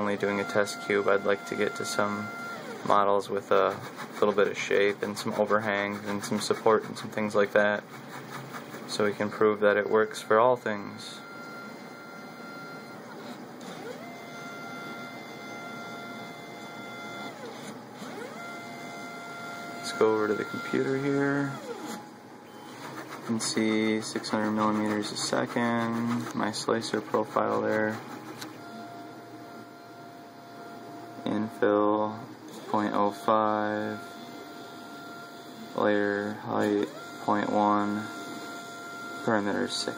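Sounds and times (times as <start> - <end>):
high-pitched electrical hum: 0.0 - 39.9
stepper motors whining: 0.0 - 39.9.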